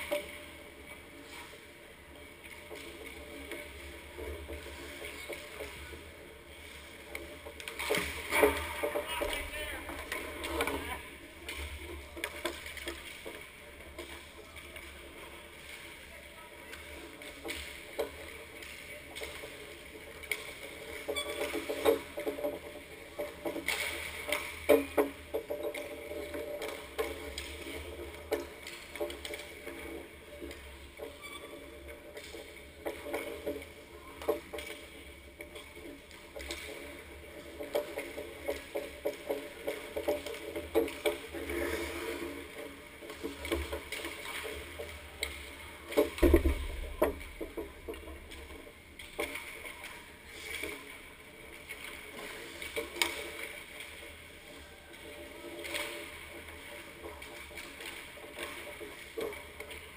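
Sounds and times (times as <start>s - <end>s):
skate blades scraping ice: 0.0s - 59.9s
pucks and sticks knocking: 32.2s - 49.9s.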